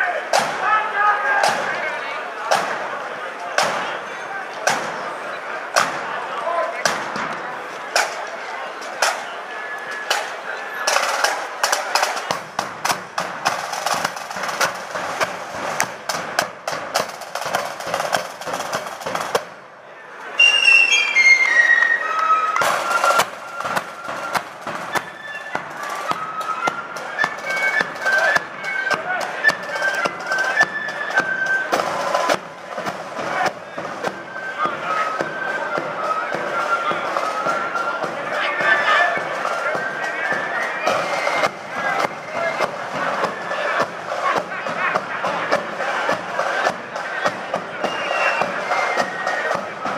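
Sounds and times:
marching drums and cymbals: 0:00.0 - 0:19.7, 0:22.5 - 0:49.9
flutes playing: 0:20.4 - 0:44.3, 0:45.3 - 0:49.9.

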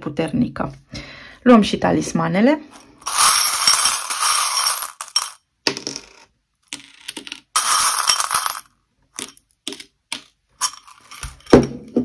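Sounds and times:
metal charms jingling: 0:03.0 - 0:05.4, 0:10.6 - 0:11.6.

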